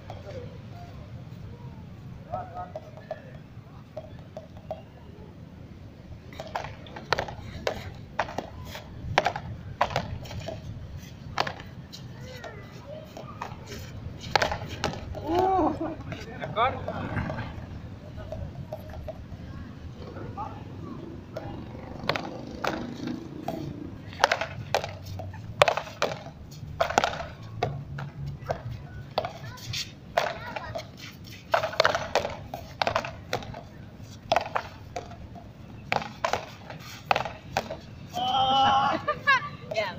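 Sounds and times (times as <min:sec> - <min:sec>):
voices: 0:00.0 - 0:39.9.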